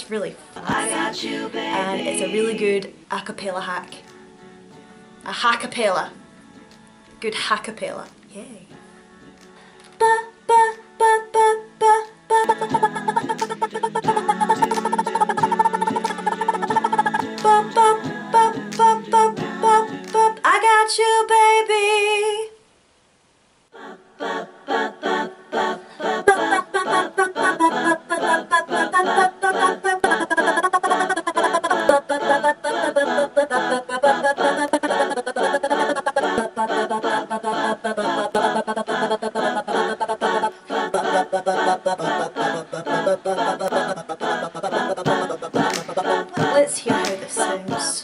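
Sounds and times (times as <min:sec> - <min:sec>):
woman singing a cappella: 0:00.0 - 0:04.1, 0:10.0 - 0:22.6, 0:25.8 - 0:48.0
sped-up singing playback: 0:00.0 - 0:22.6, 0:23.7 - 0:48.0.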